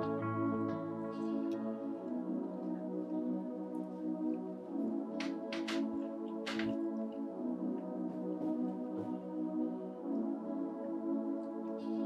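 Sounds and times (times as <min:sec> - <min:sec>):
soft ambient music: 0:00.0 - 0:12.0.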